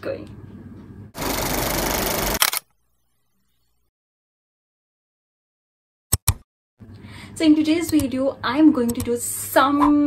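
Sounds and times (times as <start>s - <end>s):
sharp clicks: 2.3s - 2.7s.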